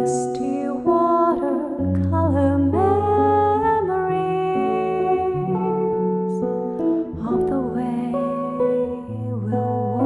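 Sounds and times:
guitar accompaniment: 0:00.0 - 0:10.0.

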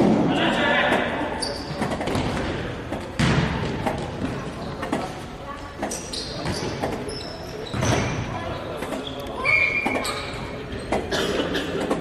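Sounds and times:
ball thuds: 0:01.8 - 0:04.4.

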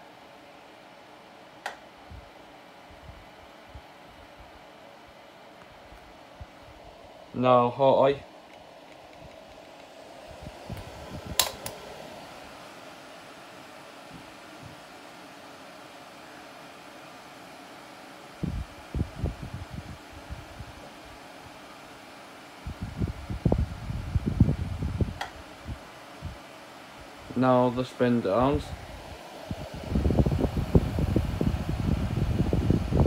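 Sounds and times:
fans running with airy hiss: 0:00.0 - 0:33.0
low irregular buffeting: 0:02.0 - 0:17.2, 0:22.7 - 0:33.0.

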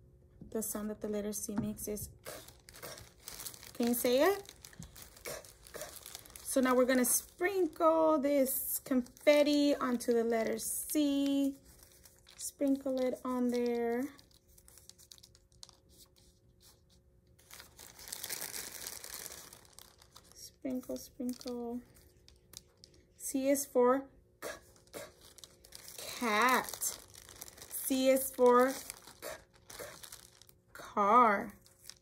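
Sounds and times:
plastic bag crinkling: 0:02.2 - 0:16.1, 0:17.4 - 0:23.2, 0:24.6 - 0:30.7, 0:31.5 - 0:32.0.

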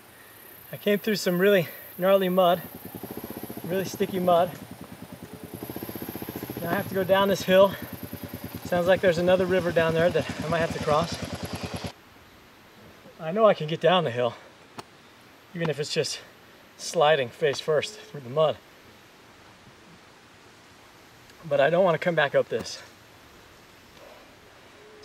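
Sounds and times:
faint outdoor ambience: 0:00.0 - 0:25.0
motorcycle engine idling: 0:02.0 - 0:11.9
person speaking: 0:03.6 - 0:04.6, 0:06.5 - 0:07.9, 0:08.6 - 0:11.3.

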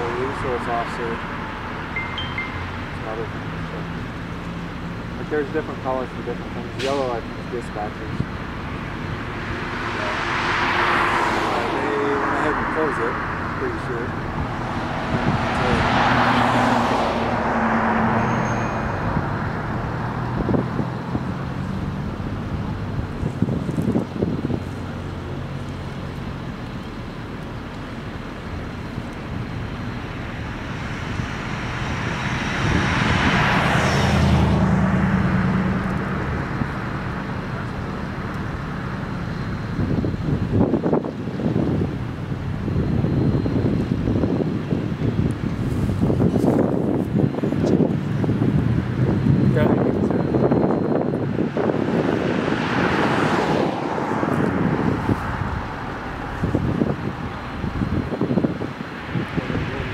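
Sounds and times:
vehicles passing: 0:00.0 - 0:59.9
wind buffeting microphone: 0:07.8 - 0:59.9.

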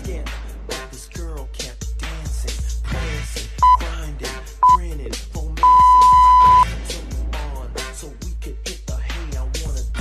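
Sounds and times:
hip hop music: 0:00.0 - 0:10.0
high electronic timer beep: 0:03.6 - 0:03.8, 0:05.6 - 0:06.6.

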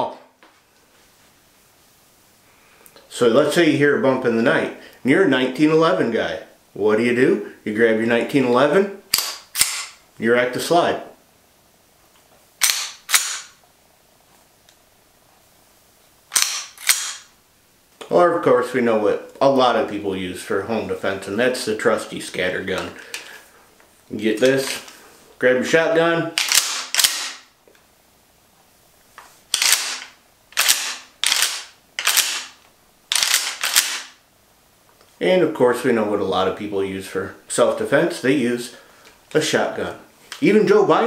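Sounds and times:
pistol slide racking: 0:09.1 - 0:10.0, 0:12.6 - 0:13.6, 0:16.3 - 0:17.3, 0:26.4 - 0:27.4, 0:29.5 - 0:34.1.

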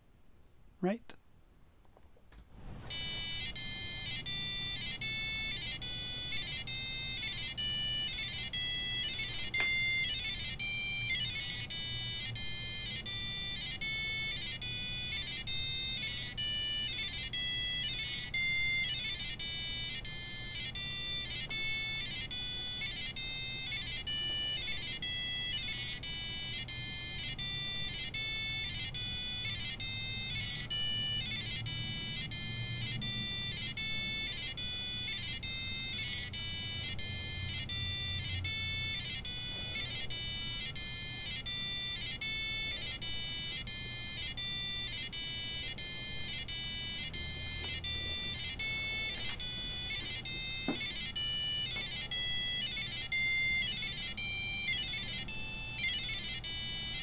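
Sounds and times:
small speaker beeping electronic tones: 0:02.9 - 0:57.0.

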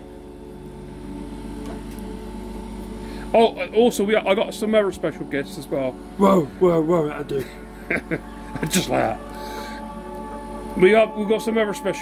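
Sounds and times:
beer cooler humming: 0:00.0 - 0:12.0.

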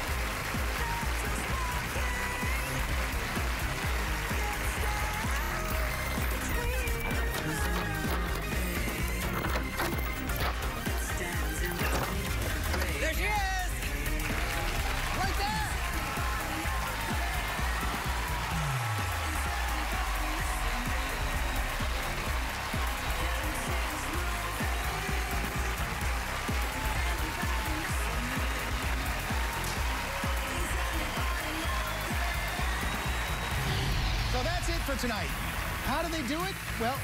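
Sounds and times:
audience applauding and cheering: 0:00.0 - 0:37.0
show music: 0:00.0 - 0:37.0.

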